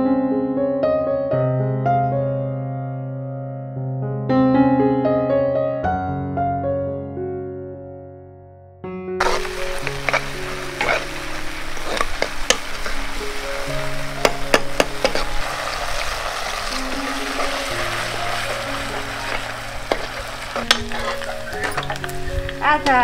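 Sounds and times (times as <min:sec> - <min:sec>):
food sizzling in hot oil: 0:09.2 - 0:23.0
metal ladle clinking against pan: 0:19.0 - 0:22.2.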